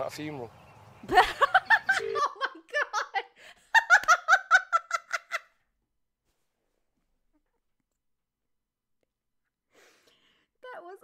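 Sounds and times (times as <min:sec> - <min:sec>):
woman laughing hard: 0:01.1 - 0:05.5.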